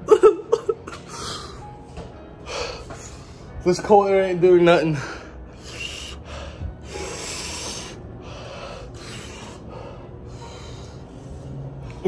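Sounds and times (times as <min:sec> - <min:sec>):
man breathing hard through mouth: 0:02.4 - 0:03.6, 0:05.0 - 0:12.0.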